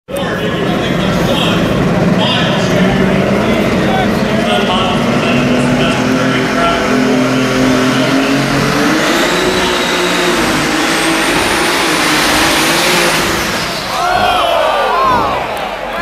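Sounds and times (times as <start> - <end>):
tractor engine at full throttle: 0.1 - 13.9.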